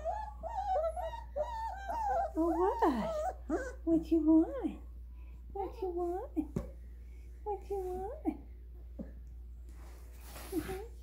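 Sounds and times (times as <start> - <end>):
puppy whimpering: 0.0 - 4.0.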